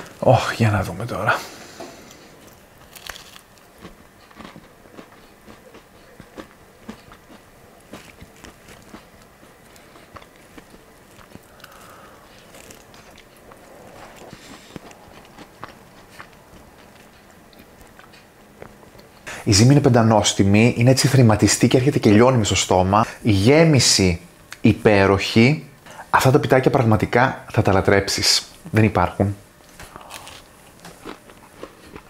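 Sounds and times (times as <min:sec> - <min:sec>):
chewing: 0:02.0 - 0:19.3, 0:29.7 - 0:32.0
pastry crackling: 0:02.4 - 0:21.9.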